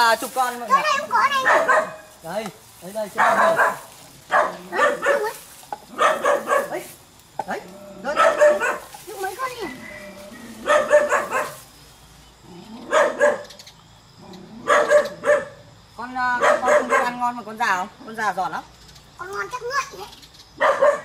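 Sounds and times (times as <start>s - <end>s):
dog barking: 1.2s - 2.1s, 3.2s - 6.9s, 8.0s - 8.9s, 10.5s - 11.6s, 12.8s - 13.6s, 14.6s - 15.7s, 16.3s - 17.3s, 20.6s - 21.0s.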